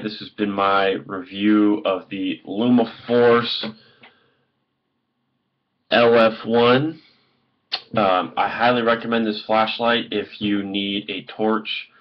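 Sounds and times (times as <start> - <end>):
man speaking: 0.0 - 3.8, 5.9 - 7.1, 7.7 - 12.0.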